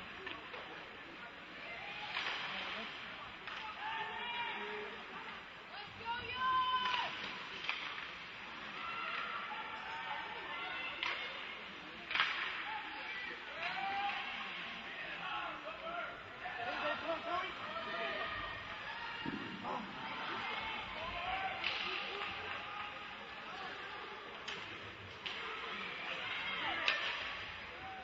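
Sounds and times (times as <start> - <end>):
hockey stick and puck cracks: 6.8 - 8.4, 11.0 - 11.4, 12.1 - 12.7, 21.6 - 22.6, 26.8 - 27.5
players and spectators calling out: 12.5 - 24.4.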